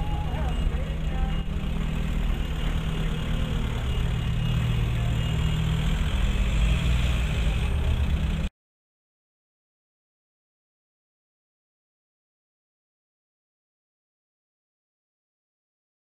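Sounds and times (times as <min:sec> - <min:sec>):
car engines idling: 0:00.0 - 0:08.5.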